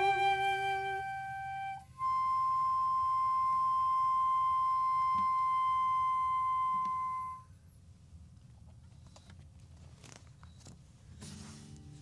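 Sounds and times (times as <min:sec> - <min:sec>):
flute holding high note: 0:00.0 - 0:07.5.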